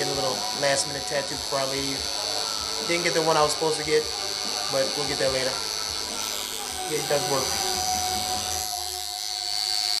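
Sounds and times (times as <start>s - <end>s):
tattoo machine buzzing: 0.0s - 10.0s.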